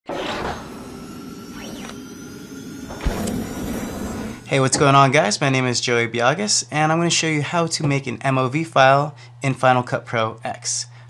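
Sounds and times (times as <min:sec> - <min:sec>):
tone sweeping up and down: 0:00.1 - 0:04.5
whoosh: 0:00.1 - 0:04.5.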